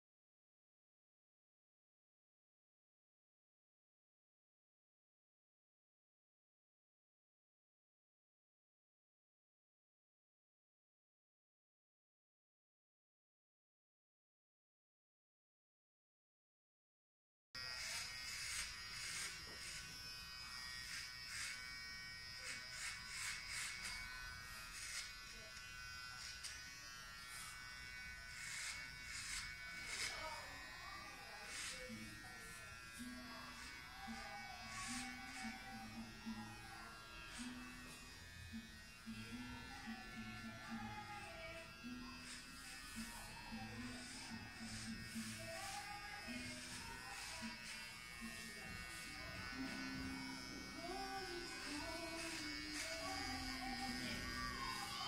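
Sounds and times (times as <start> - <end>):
electric hair clippers buzzing: 17.6 - 55.0
faint voice: 28.4 - 38.0, 39.1 - 55.0.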